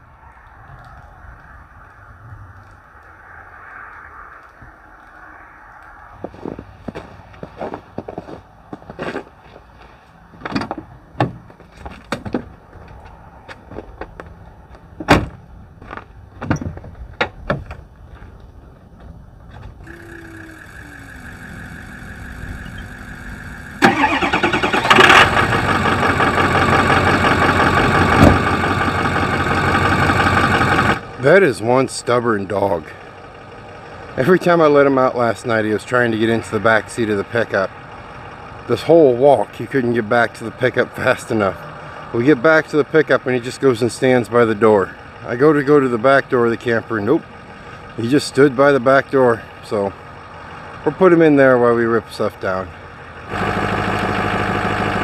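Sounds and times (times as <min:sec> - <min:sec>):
diesel engine starting and running: 0:18.6 - 0:55.0
steady higher hum: 0:19.8 - 0:24.2.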